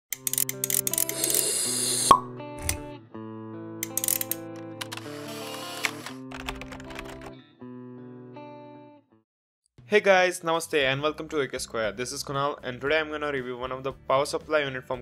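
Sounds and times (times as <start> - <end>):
clicking and popping effects: 2.0 - 2.9.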